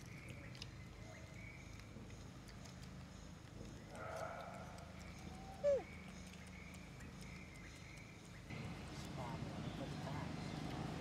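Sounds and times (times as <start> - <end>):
rough monkey call: 4.0 - 6.2.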